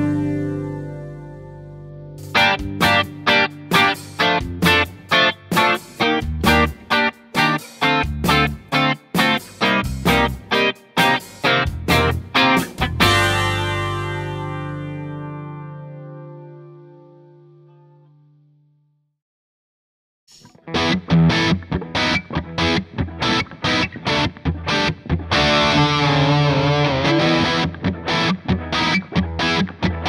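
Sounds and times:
clean electric guitar chord stabs: 0.0 - 18.4, 20.4 - 30.0.

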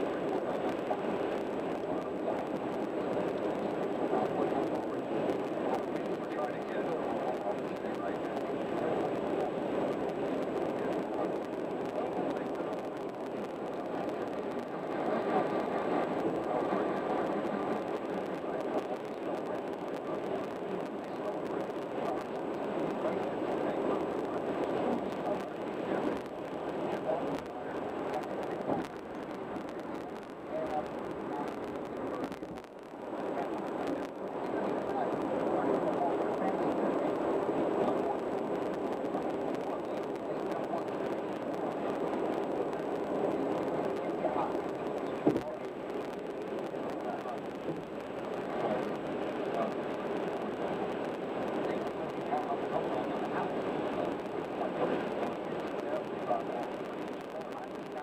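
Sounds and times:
muffled voices murmuring: 0.0 - 58.0.

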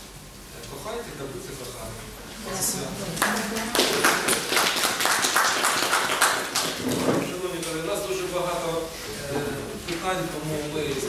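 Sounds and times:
people applauding: 3.1 - 7.3.

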